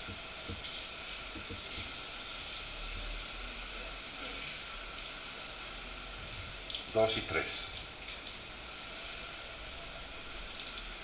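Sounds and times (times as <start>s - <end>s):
background hiss: 0.0s - 11.0s.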